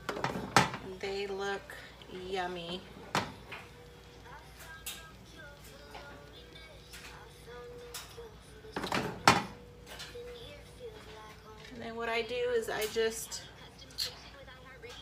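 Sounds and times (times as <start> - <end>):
quiet background music: 0.0 - 15.0.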